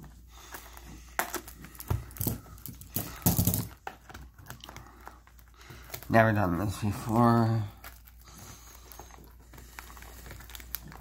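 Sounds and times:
plastic shrink wrap crinkling: 0:00.0 - 0:11.0.

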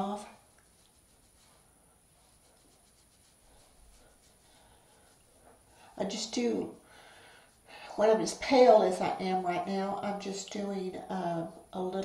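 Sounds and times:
makeup brush rustling: 0:00.0 - 0:06.8.

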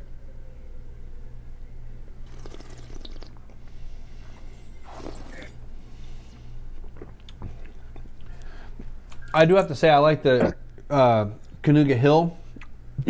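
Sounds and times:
low electrical hum: 0:00.0 - 0:13.0
sipping and slurping wine: 0:02.2 - 0:03.5, 0:04.8 - 0:05.6.

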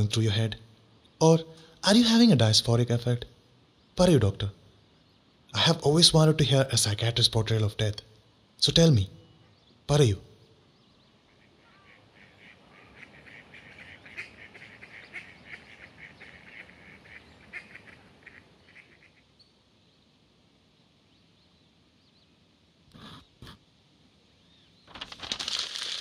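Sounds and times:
outdoor background hiss: 0:00.0 - 0:26.0
faint bird calls: 0:09.0 - 0:20.1.

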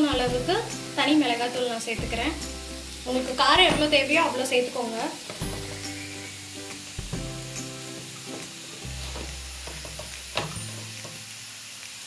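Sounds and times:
background music of held notes: 0:00.0 - 0:04.4, 0:05.3 - 0:11.3
food sizzling in oil: 0:00.0 - 0:12.0.

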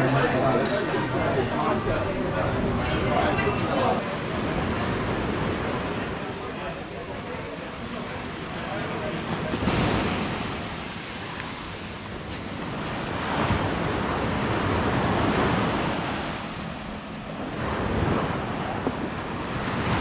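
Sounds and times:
waves washing up pebbly beach: 0:09.5 - 0:16.8, 0:17.5 - 0:20.0.

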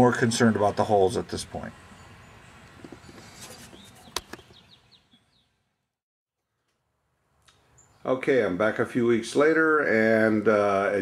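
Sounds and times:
small bird chirping: 0:01.8 - 0:05.6, 0:07.5 - 0:08.1.

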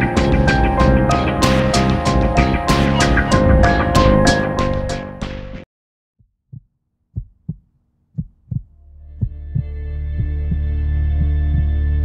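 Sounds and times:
heartbeat thumps: 0:00.0 - 0:05.4, 0:06.2 - 0:11.7
low musical drone: 0:00.0 - 0:05.6, 0:08.8 - 0:12.0.

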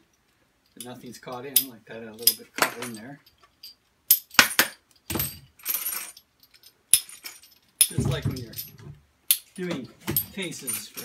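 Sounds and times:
metal hardware clinking: 0:00.6 - 0:11.0.

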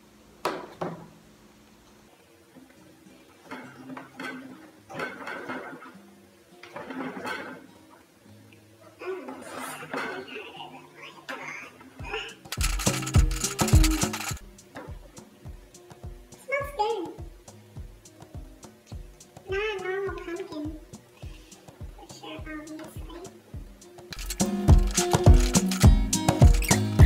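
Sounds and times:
background music: 0:12.0 - 0:27.0.

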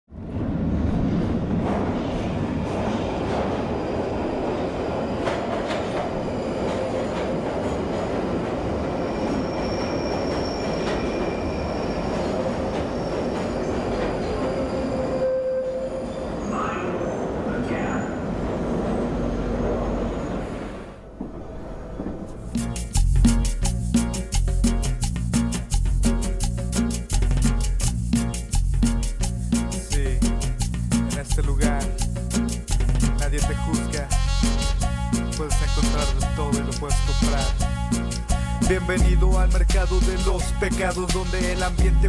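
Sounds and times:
subway train rumble: 0:00.1 - 0:23.9, 0:29.2 - 0:42.0
wheels squealing on rails: 0:01.9 - 0:22.6.

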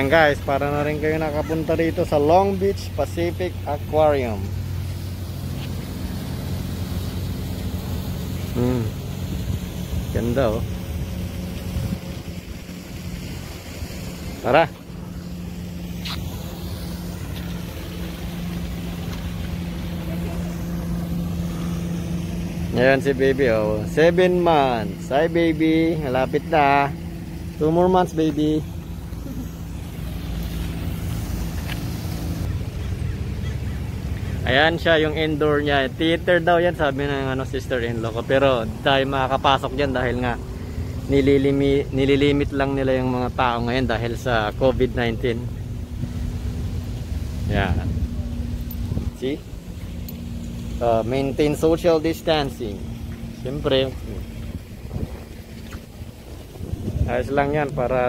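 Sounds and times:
faint engine hum: 0:00.0 - 0:58.0
traffic rumble: 0:00.0 - 0:58.0
wind on microphone: 0:54.0 - 0:57.8.

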